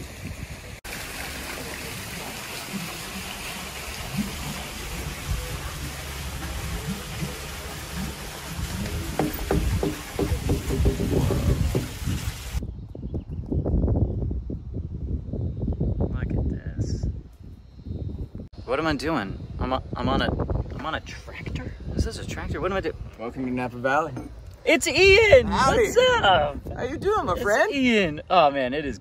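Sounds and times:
rushing running water: 0.0s - 12.6s.

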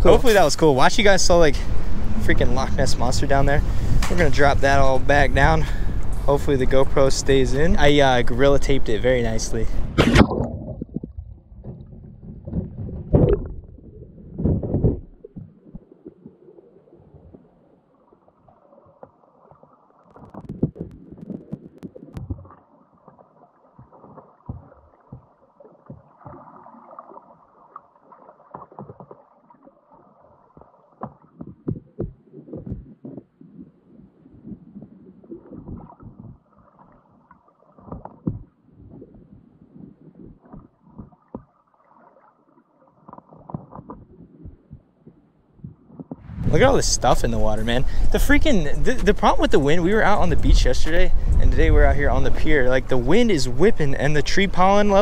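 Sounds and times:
heavy underwater thuds: 9.7s - 15.8s, 20.1s - 22.6s, 23.8s - 26.4s, 30.6s - 37.0s, 37.8s - 41.6s, 43.4s - 52.7s
soft knocks and bumps: 10.6s - 15.5s, 23.8s - 26.4s, 30.6s - 36.4s, 37.8s - 41.6s
rushing water: 46.2s - 55.0s.

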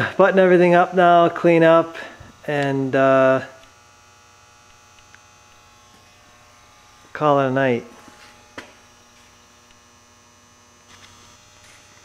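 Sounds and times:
faint electrical hum and buzz: 0.0s - 12.0s.

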